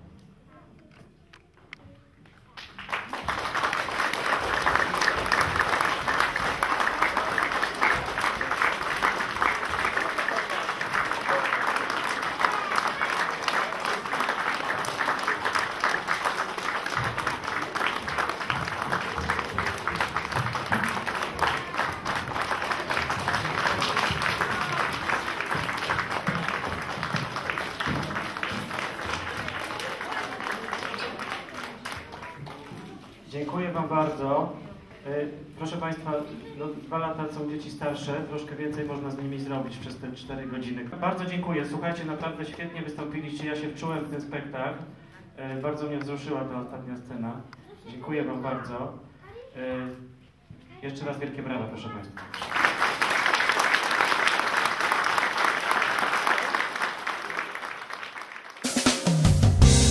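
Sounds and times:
audience applauding: 2.6 - 32.7, 52.2 - 59.9.

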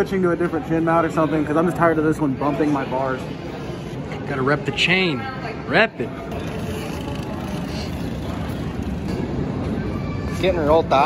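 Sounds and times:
dirt bike engines droning: 6.0 - 11.0.

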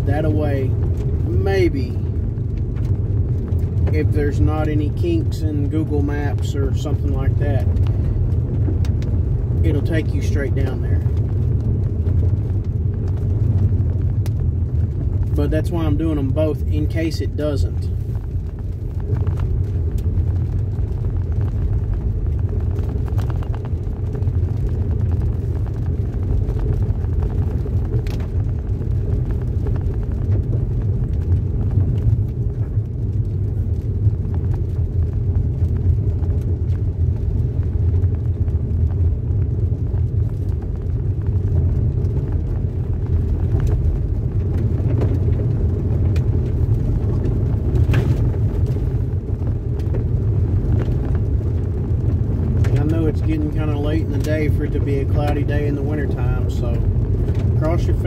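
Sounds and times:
car rumble on dirt road: 0.0 - 58.0.

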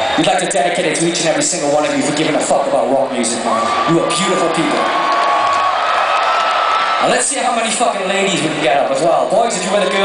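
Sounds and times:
crowd cheering and whooping: 3.2 - 7.4, 9.5 - 10.0.

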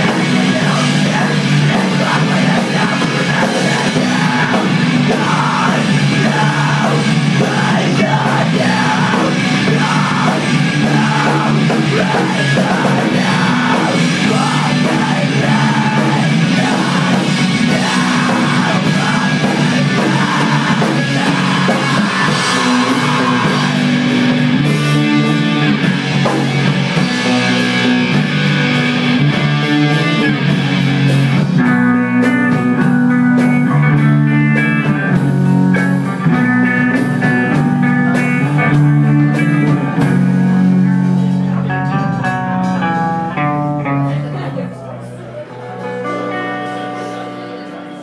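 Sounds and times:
rock band playing: 0.0 - 48.0.

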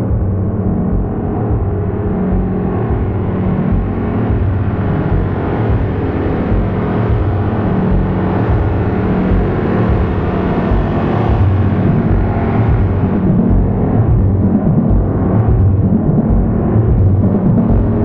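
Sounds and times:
pulsing bass tone: 0.0 - 18.0
synthesizer low drone: 0.0 - 18.0.

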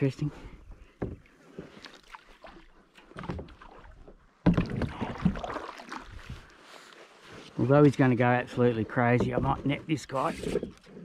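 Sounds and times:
water splashing: 1.5 - 6.9.

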